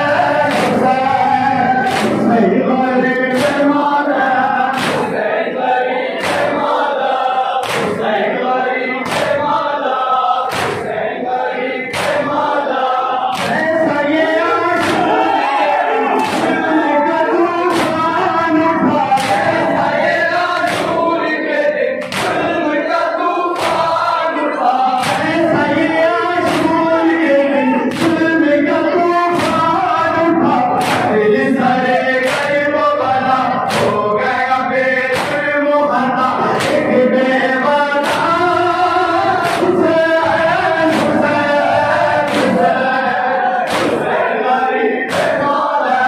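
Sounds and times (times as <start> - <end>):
crowd singing along: 0.0 - 46.0
men singing a lament: 0.0 - 46.0
hands slapping chests: 0.5 - 1.0, 1.8 - 2.3, 3.3 - 3.7, 4.7 - 5.2, 6.2 - 6.6, 7.6 - 8.0, 9.0 - 9.5, 10.5 - 10.9, 11.9 - 12.4, 13.3 - 13.8, 14.8 - 15.3, 16.2 - 16.7, 17.7 - 18.2, 19.0 - 20.0, 20.6 - 21.0, 22.0 - 22.5, 23.6 - 24.0, 25.0 - 25.4, 26.4 - 26.8, 27.9 - 28.2, 29.3 - 29.7, 30.7 - 31.1, 32.2 - 32.6, 33.7 - 34.1, 35.1 - 35.6, 36.5 - 36.9, 38.0 - 38.4, 39.2 - 39.8, 40.5 - 41.3, 41.9 - 42.7, 43.6 - 44.2, 45.1 - 45.5.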